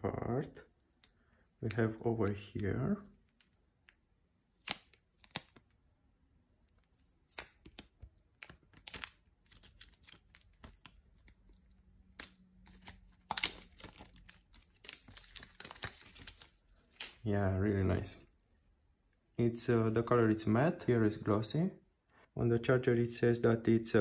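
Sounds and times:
plastic film crackling: 6.8s - 17.3s.

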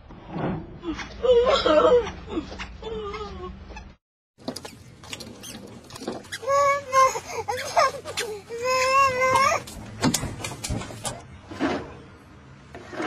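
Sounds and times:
small child crying: 6.4s - 9.8s.

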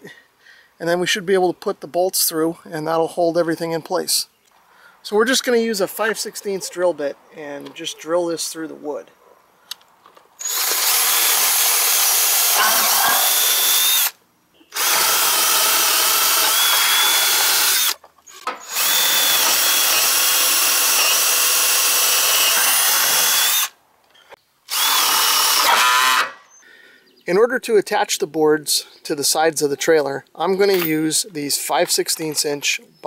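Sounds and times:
drill boring through wood: 10.4s - 18.0s, 18.6s - 23.8s, 24.7s - 26.4s.

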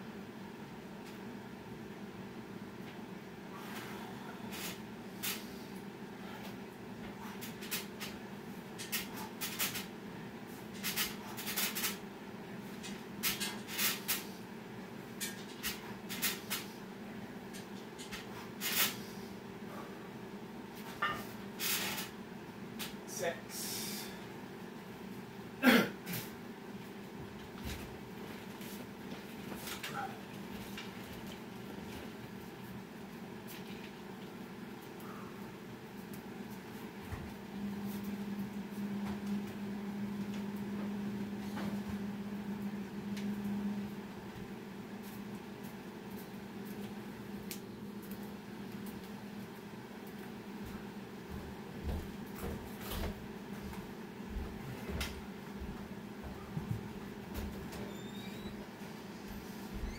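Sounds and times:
steady low hum: 0.0s - 59.9s.

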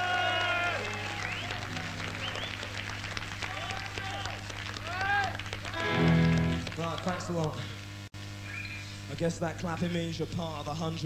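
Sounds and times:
low mains hum: 0.0s - 11.0s.

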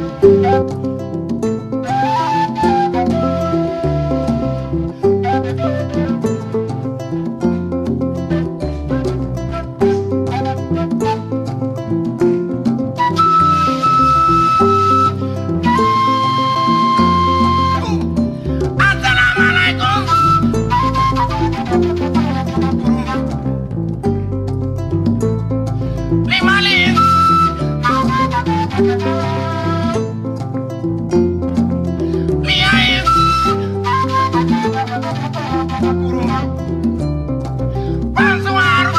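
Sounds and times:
hand drums: 0.0s - 38.9s
plucked kora: 0.0s - 38.9s
electric bass: 2.6s - 34.8s, 35.4s - 38.3s
wooden flute high note: 13.1s - 18.0s, 19.1s - 23.4s, 26.4s - 30.1s, 32.4s - 36.6s
steady bass: 17.8s - 33.7s.

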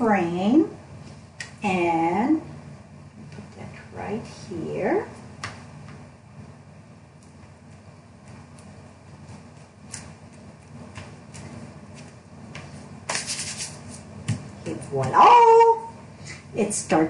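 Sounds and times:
palms brushing over paper: 7.2s - 14.9s
paper rustling: 8.5s - 14.1s.

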